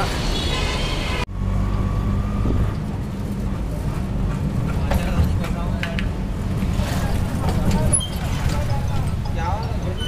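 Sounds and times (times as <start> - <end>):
auto-rickshaw engine rumble: 0.0 - 10.0
street traffic noise: 0.0 - 10.0.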